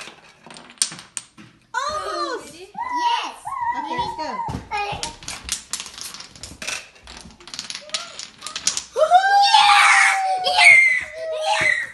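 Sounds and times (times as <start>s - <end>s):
wooden dominoes clicking: 0.0s - 1.4s, 5.0s - 9.6s
child screaming: 1.8s - 4.6s, 9.0s - 11.9s.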